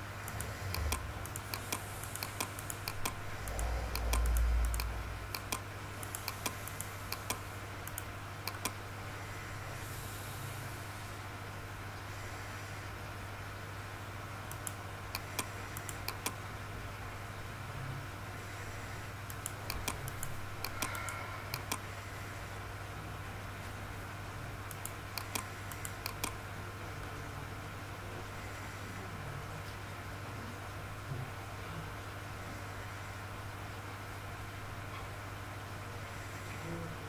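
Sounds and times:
steady low hum: 0.0s - 37.0s
computer keys and mouse clicking: 0.2s - 8.8s, 14.5s - 16.4s, 19.2s - 21.9s, 24.7s - 26.4s
low rumble: 3.1s - 5.4s.

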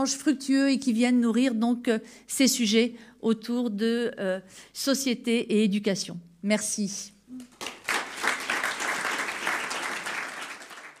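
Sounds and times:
audience applauding: 7.4s - 11.0s.

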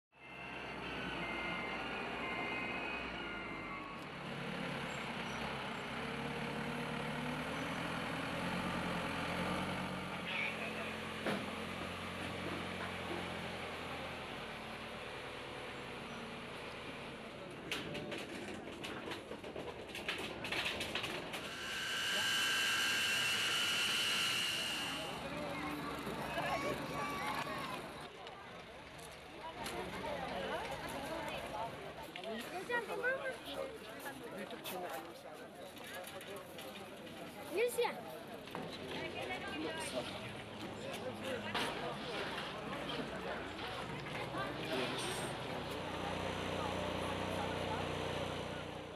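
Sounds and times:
reversing alarm beeps: 0.2s - 4.5s, 21.4s - 27.2s
forklift engine running: 0.2s - 18.2s, 20.9s - 28.1s, 40.2s - 48.9s
aircraft turbine whine: 21.4s - 28.0s.

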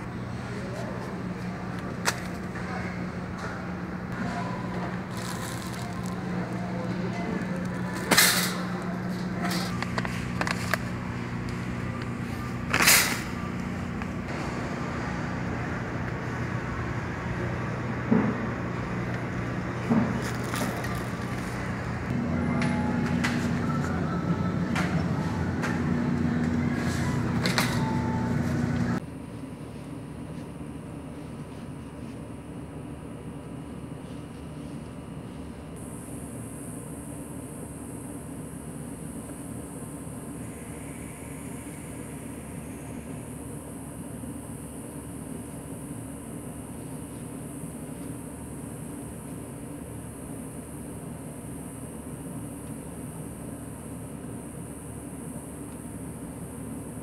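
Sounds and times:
low supermarket hum: 0.0s - 57.0s
steady outdoor hiss: 35.8s - 57.0s.

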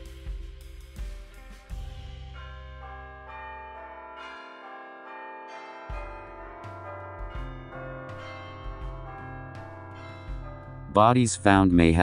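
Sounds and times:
bell-like chimes music: 1.6s - 12.0s.

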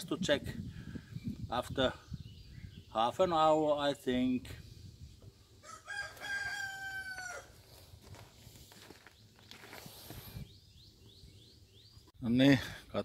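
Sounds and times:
rooster crowing: 5.6s - 7.6s.

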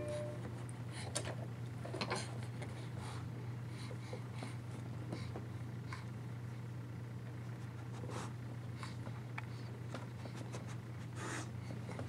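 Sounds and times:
steady low hum: 0.0s - 12.0s
dog sniffing snort: 7.8s - 8.4s, 10.3s - 11.6s.

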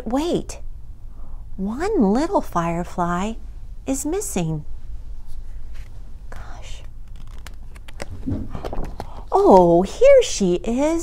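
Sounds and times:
book page turning: 5.6s - 9.2s.

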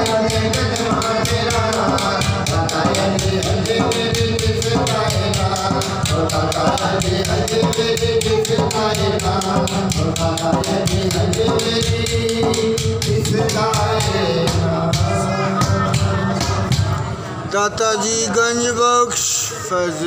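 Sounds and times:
fast hand-drum beat: 0.0s - 17.0s
rattling percussion: 0.0s - 17.1s
person singing into microphone: 0.0s - 20.0s.

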